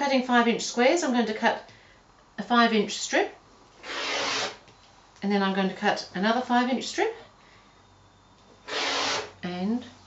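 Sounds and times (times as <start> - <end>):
rotary cutter cutting fabric: 3.8 - 4.6, 8.6 - 9.4.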